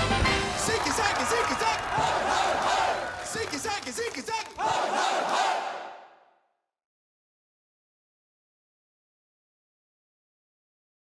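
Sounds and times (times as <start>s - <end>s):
crowd shouting and cheering: 0.0s - 6.3s.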